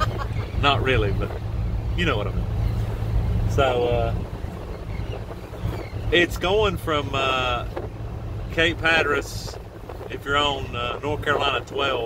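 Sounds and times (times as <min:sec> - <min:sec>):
ferry engine rumble: 0:00.0 - 0:12.0
wind noise: 0:00.0 - 0:12.0.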